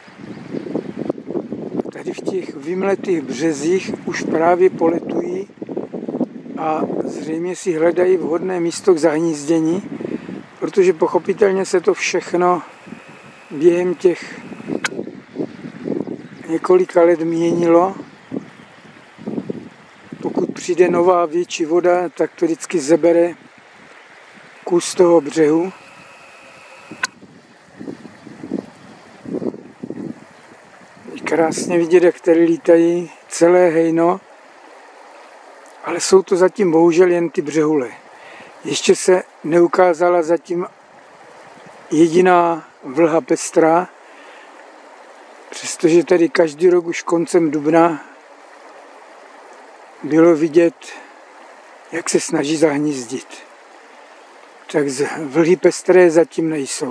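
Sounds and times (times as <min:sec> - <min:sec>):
wind buffeting microphone: 0:00.1 - 0:07.4, 0:09.6 - 0:16.8, 0:17.4 - 0:21.0, 0:23.3 - 0:31.9
sharp click: 0:14.3 - 0:15.0, 0:25.9 - 0:27.2.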